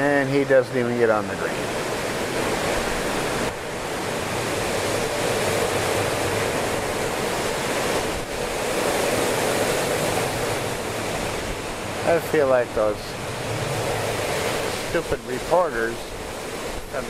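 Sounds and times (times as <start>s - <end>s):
strong gusty wind in trees: 0.0s - 17.0s.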